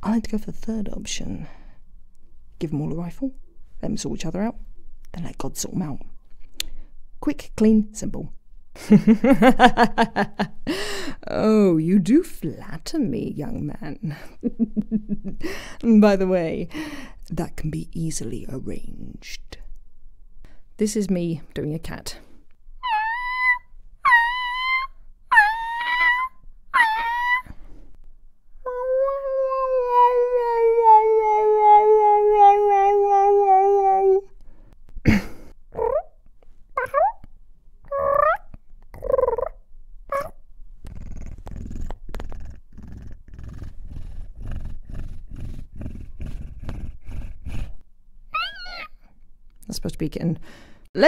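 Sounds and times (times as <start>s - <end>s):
woman meowing like a cat: 28.7s - 34.3s
low rhythmic purr: 37.9s - 47.8s.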